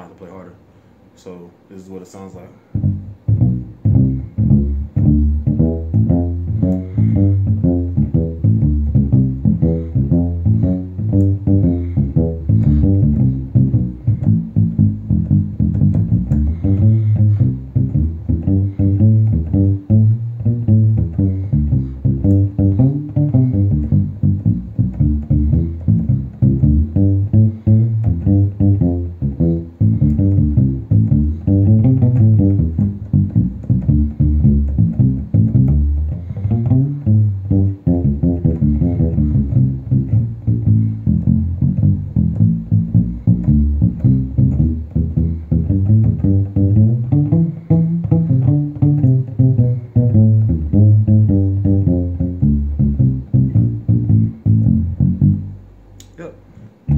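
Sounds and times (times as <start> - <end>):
muted bass guitar funk notes: 2.6 - 56.9.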